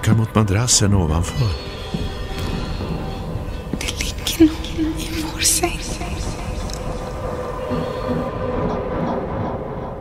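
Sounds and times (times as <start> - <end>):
low rumbling drone: 2.0 - 10.0.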